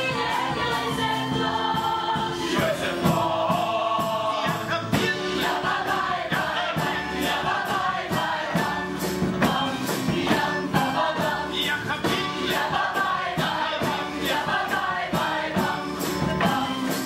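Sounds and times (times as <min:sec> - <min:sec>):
ensemble singing in chorus: 0:00.0 - 0:17.0
instrumental accompaniment: 0:00.0 - 0:17.0.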